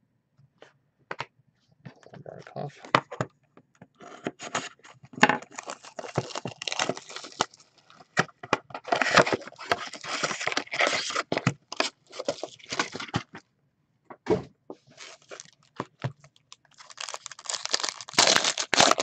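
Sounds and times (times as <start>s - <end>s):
wrapper crinkling: 5.4s - 7.9s, 15.0s - 19.0s
card pack wrappers tearing: 5.5s - 7.6s, 8.9s - 13.1s, 16.5s - 19.0s.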